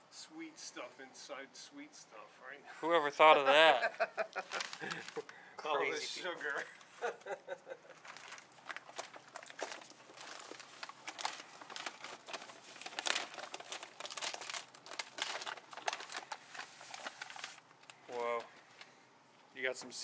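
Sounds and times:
paper crinkling: 4.2 - 5.3, 7.9 - 19.0
chocolate bark cracking: 8.0 - 16.4.

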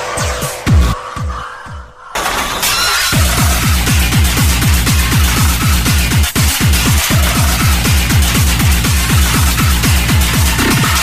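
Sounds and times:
distorted kick drums: 7.8 - 11.0.

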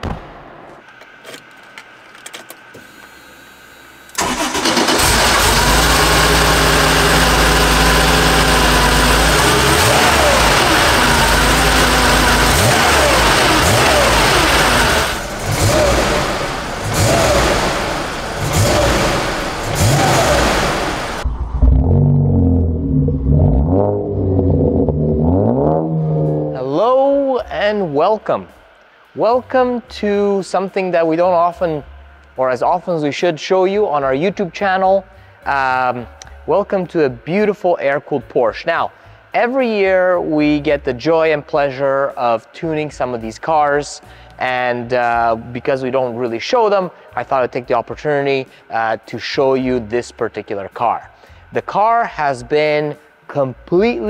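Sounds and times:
car engine starting and revving: 4.2 - 26.8.

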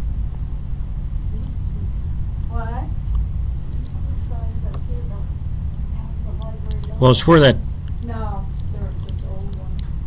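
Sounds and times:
low background rumble: 0.0 - 10.0
faint voice: 6.8 - 7.6.

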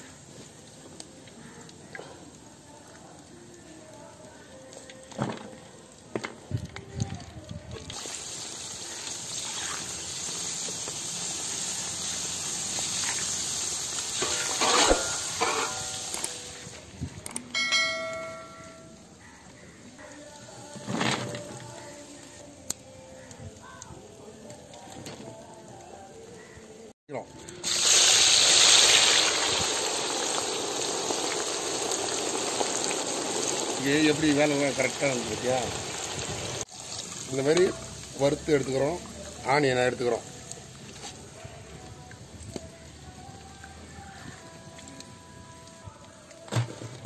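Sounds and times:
nuts sizzling in hot oil: 0.0 - 5.1, 5.8 - 17.0, 27.4 - 46.4
mesh strainer scraping pan: 14.2 - 16.3
bell-like chime: 17.5 - 19.1.

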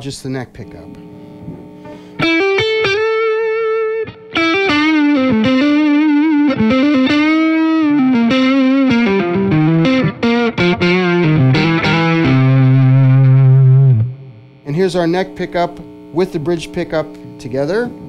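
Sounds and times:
overdriven electric guitar lead: 0.8 - 17.3.

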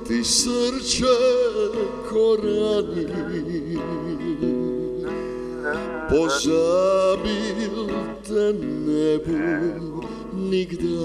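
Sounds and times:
man singing slow song: 0.0 - 11.0
strummed acoustic guitar: 0.0 - 11.0.

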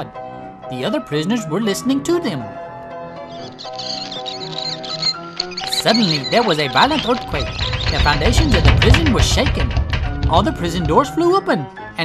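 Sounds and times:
soft background music: 0.0 - 12.0
high mouse squeaks: 3.3 - 10.8.

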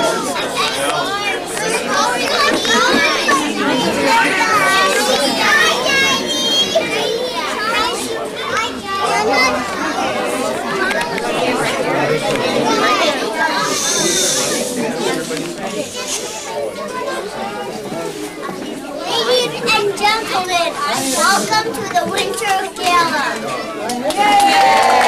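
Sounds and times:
children talking and calling out: 0.0 - 24.5.

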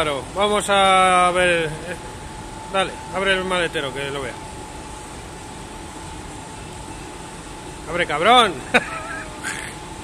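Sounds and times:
faint steady whine: 0.0 - 10.0
workshop background hum: 0.0 - 10.0.

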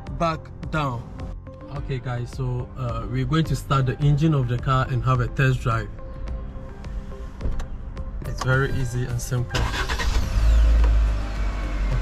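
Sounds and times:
car engine starting: 6.9 - 12.0.

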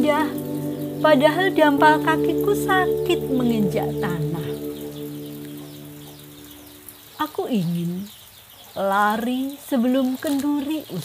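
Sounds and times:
soft instrumental music: 0.0 - 7.1
faint high bird chirps: 0.0 - 8.8.

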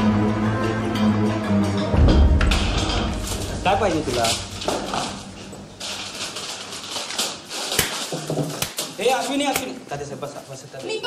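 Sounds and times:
noisy commotion: 1.8 - 8.5
sharp knocks and thuds: 1.9 - 6.0.

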